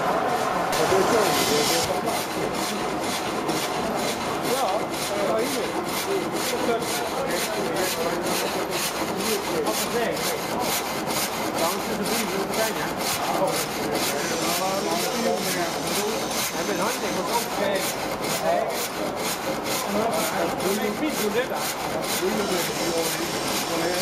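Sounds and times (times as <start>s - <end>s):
frame saw cutting a log: 0.0s - 24.0s.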